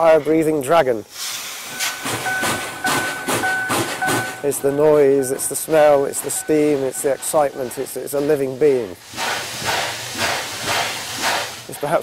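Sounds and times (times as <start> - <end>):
steam locomotive exhaust chuffing: 1.1 - 12.0
thin high whine: 1.7 - 8.6.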